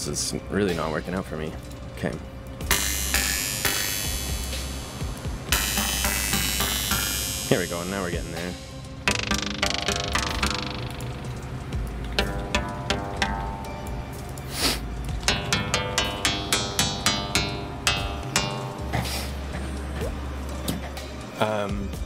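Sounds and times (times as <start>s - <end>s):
low steady bass tone: 2.6s - 20.7s
synthesized plucked-string notes: 2.6s - 21.1s.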